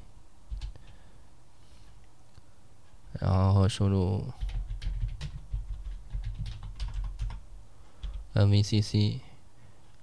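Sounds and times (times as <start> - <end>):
computer keyboard typing: 0.5 - 1.0, 4.4 - 7.4, 8.0 - 8.3.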